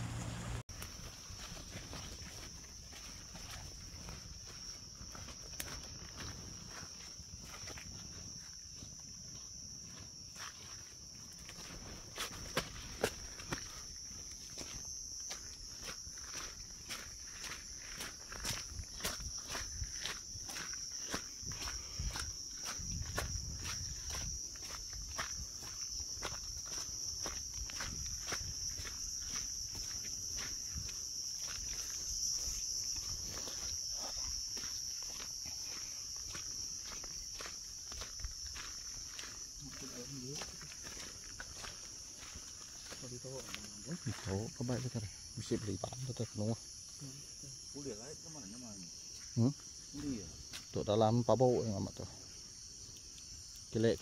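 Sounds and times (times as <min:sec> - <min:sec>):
night insects droning: 0:00.0 - 0:54.0
footsteps through undergrowth: 0:00.2 - 0:47.0.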